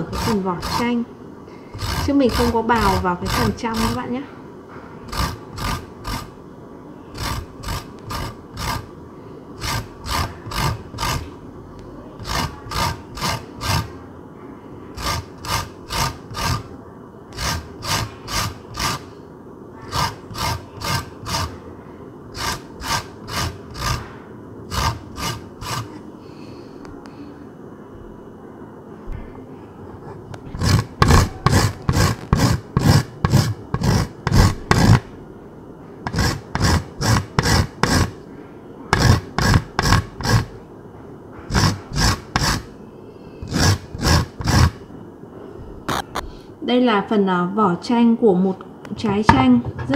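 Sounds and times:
rind grated on hand grater: 0.0s - 1.0s, 1.7s - 4.1s, 5.1s - 6.4s, 7.1s - 8.9s, 9.6s - 11.3s, 12.2s - 13.9s, 15.0s - 16.7s, 17.3s - 19.1s, 19.8s - 21.6s, 22.3s - 26.0s, 30.5s - 35.0s, 36.1s - 38.2s, 38.9s - 40.5s, 41.5s - 42.7s, 43.4s - 44.8s.

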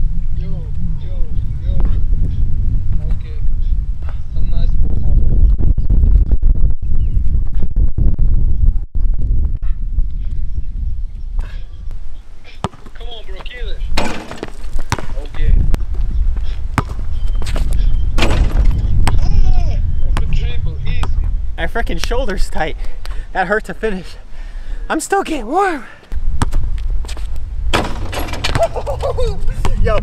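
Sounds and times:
wind rumbling on microphone: 0.0s - 23.3s, 26.1s - 30.0s
ball hitting rim and backboard: 12.6s - 13.0s, 14.0s - 15.4s, 16.8s - 17.0s, 18.2s - 19.2s, 27.7s - 28.8s
basketball bouncing on asphalt: 12.6s - 13.0s, 14.1s - 15.4s, 16.7s - 17.6s, 26.4s - 27.2s.

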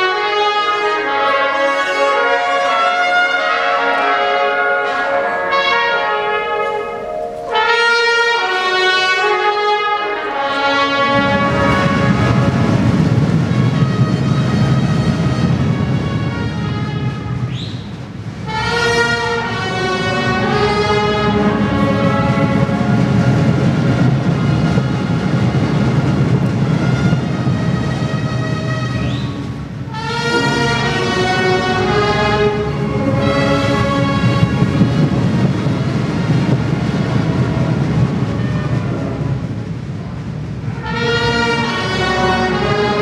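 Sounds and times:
brass sustained chords: 0.0s - 17.5s, 18.4s - 25.7s, 26.8s - 39.6s, 40.6s - 43.0s
dense rumbling orchestral swell: 0.0s - 17.5s, 18.1s - 43.0s.

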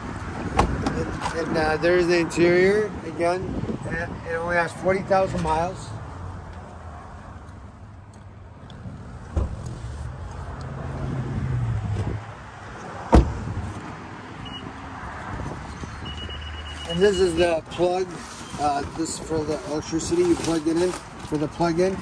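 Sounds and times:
car door shutting: 9.3s - 9.8s, 13.1s - 13.5s.

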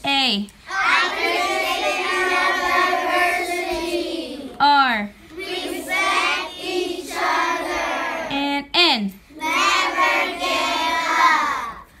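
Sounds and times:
children singing: 0.7s - 4.6s, 5.4s - 8.3s, 9.5s - 11.8s.

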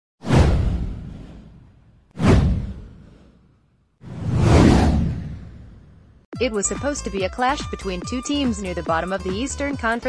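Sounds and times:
whoosh with deep low rumble: 0.2s - 6.3s.

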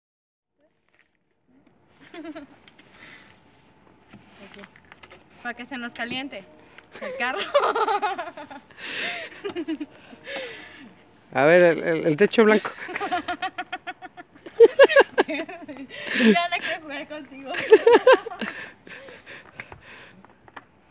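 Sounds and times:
person laughing: 2.0s - 2.6s, 7.0s - 10.4s, 12.5s - 16.7s, 17.5s - 19.2s
brush sweeping snow: 5.2s - 8.7s
snow brush sweeping snow: 7.0s - 8.7s.

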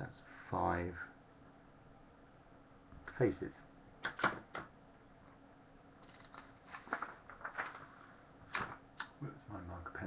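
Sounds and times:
paper rustling: 6.0s - 8.8s.

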